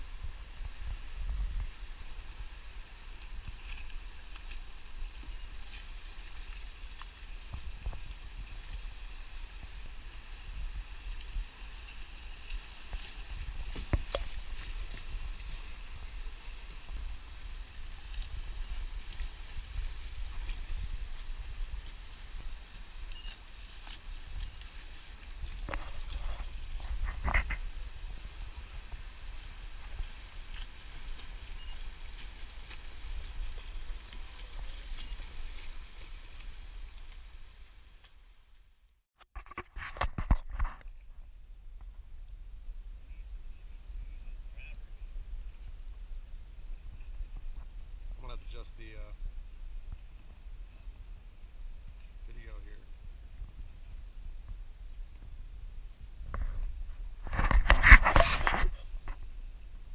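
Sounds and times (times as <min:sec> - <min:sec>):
wind rumbling on microphone: 0:00.0 - 0:38.3, 0:39.3 - 0:59.9.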